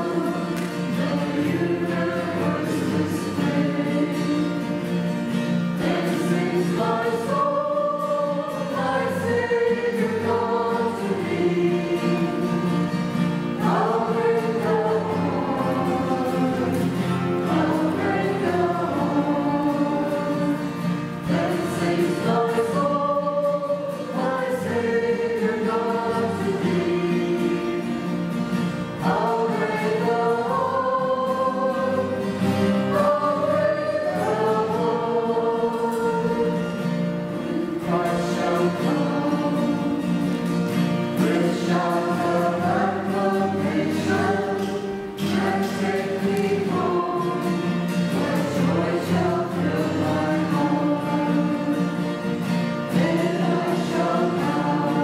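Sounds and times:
person singing a hymn: 0.0 - 55.0.

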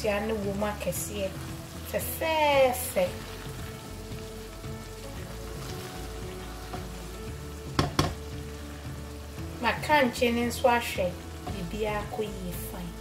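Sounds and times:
stew sizzling in a pan: 0.0 - 13.0
spatula stirring: 3.0 - 8.6
spatula knocking against pan: 7.7 - 8.2.

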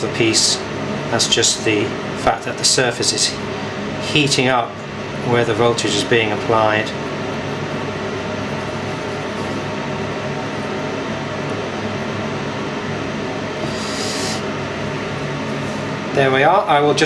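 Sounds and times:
electrical hum: 0.0 - 17.0
short high hiss: 13.6 - 14.5.

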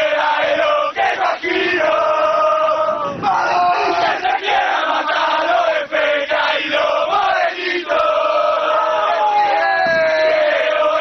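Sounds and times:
football fans chanting: 0.0 - 11.0.

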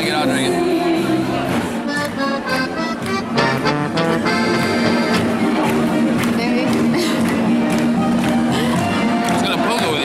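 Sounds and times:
accordion music: 0.0 - 9.7.

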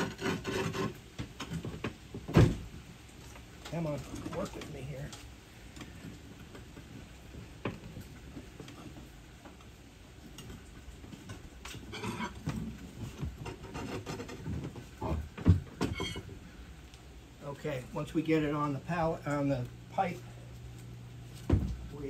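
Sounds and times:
metal bar scraping on concrete: 0.0 - 1.0, 11.7 - 12.4
wood and metal knocking: 10.3 - 16.4.

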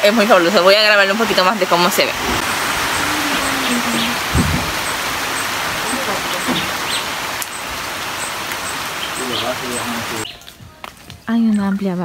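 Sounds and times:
rain on foliage: 0.2 - 11.1.

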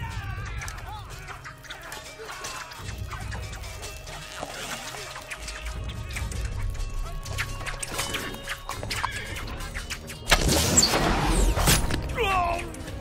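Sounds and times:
dramatic film score: 0.0 - 13.0.

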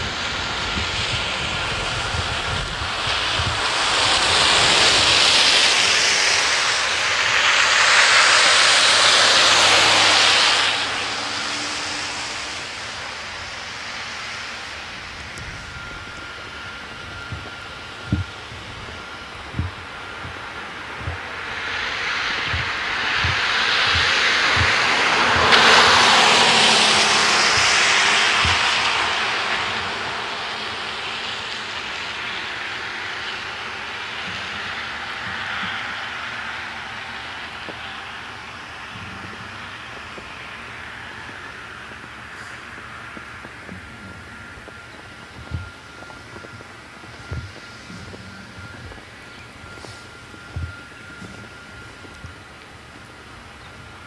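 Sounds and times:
tyre hiss on wet street: 0.0 - 54.0.

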